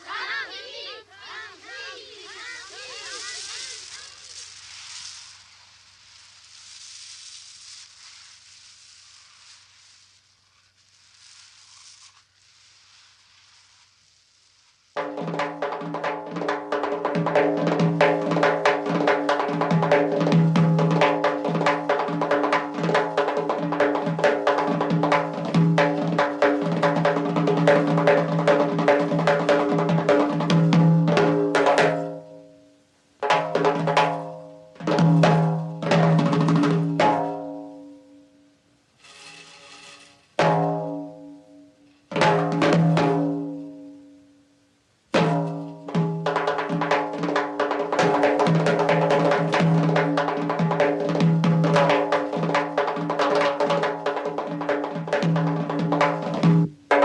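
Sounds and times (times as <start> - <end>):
faint hiss: 0.0 - 57.0
rapid drumming on large drum: 15.0 - 32.3, 33.2 - 37.6, 40.4 - 41.0, 42.1 - 43.5, 45.2 - 57.0.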